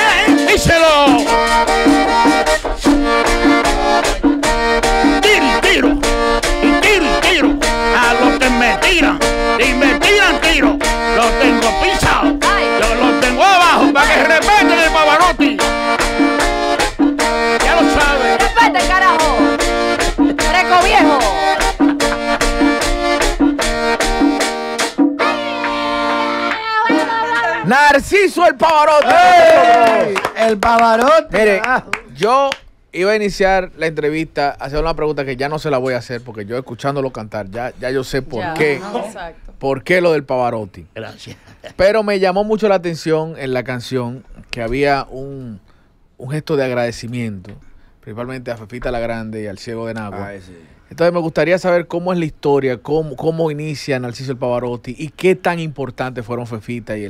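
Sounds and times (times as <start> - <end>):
button accordion playing: 0.0 - 27.6
drum and percussion beat: 0.0 - 27.7.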